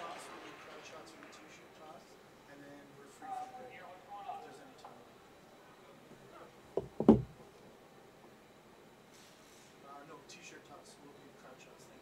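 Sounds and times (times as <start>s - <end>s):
quick knocks: 6.8s - 7.4s.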